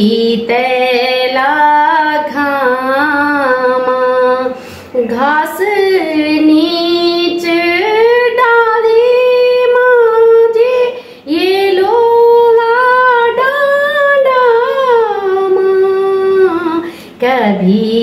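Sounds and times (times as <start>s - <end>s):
woman singing unaccompanied: 0.0s - 18.0s.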